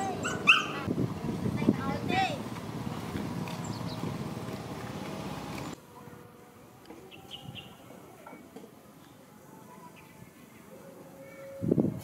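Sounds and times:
dog yelping and barking: 0:00.0 - 0:00.9.

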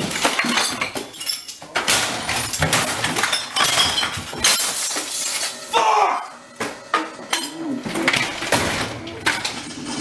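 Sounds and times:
crashes and bangs of smashing: 0:00.0 - 0:05.7, 0:07.9 - 0:10.0
glass clinking and breaking: 0:00.0 - 0:05.7, 0:06.9 - 0:10.0.

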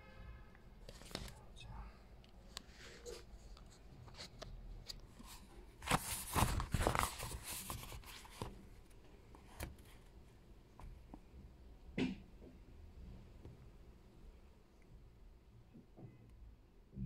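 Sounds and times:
book pages rustling: 0:00.8 - 0:01.5, 0:02.5 - 0:10.1.

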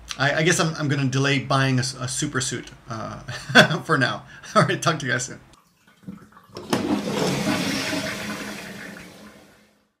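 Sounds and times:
water rushing through toilet bowl: 0:05.7 - 0:10.0
toilet flush lever click: 0:06.1 - 0:09.2.

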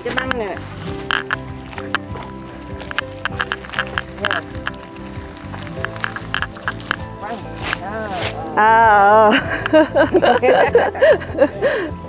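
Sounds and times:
cut stalks rustling when shaken: 0:00.0 - 0:08.6
background music held notes: 0:00.0 - 0:12.0.

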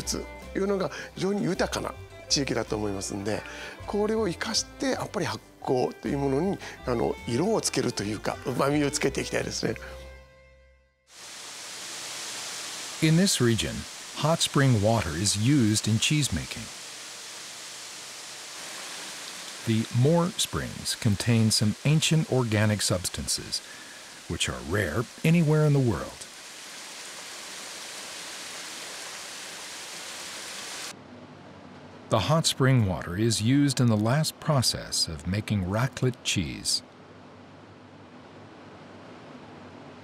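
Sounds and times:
water running into a bath: 0:11.2 - 0:30.9.

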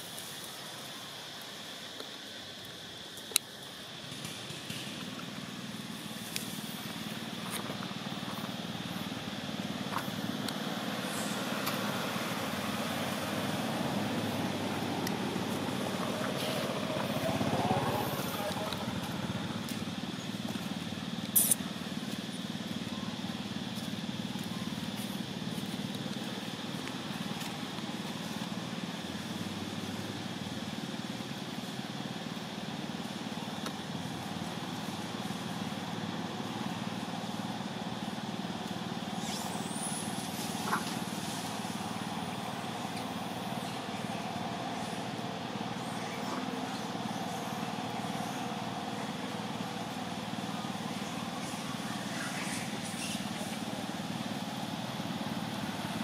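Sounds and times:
outdoor background hum: 0:00.0 - 0:56.0.

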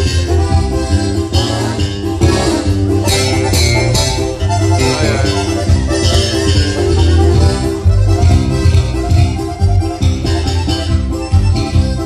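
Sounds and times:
button accordion: 0:00.0 - 0:12.0
electric bass: 0:00.0 - 0:12.0
strummed acoustic guitar: 0:00.0 - 0:12.0.

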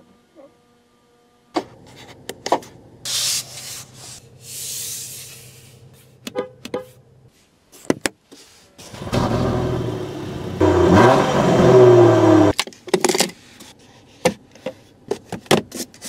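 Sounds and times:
car engine running: 0:08.8 - 0:12.5.

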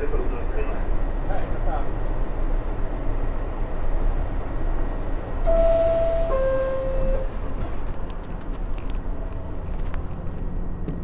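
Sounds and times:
subway car equipment hum: 0:00.0 - 0:11.0
air hiss: 0:05.5 - 0:07.1.

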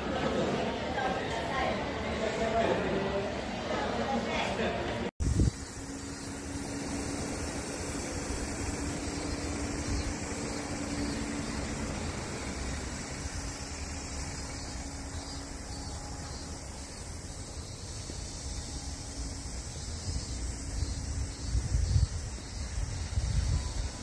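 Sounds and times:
outdoor rumble and hiss: 0:00.0 - 0:24.0.

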